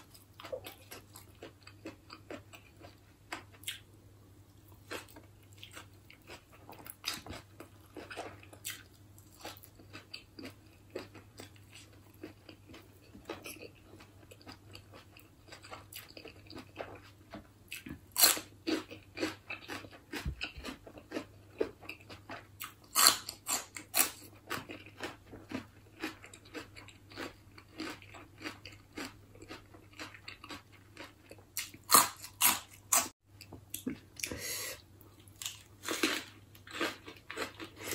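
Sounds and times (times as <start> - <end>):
close chewing and biting: 4.7 - 33.1, 35.2 - 37.9.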